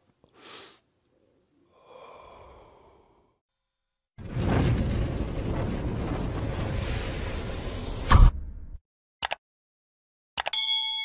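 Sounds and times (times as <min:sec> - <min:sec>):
bright bell ding: 0:10.5 - 0:11.0.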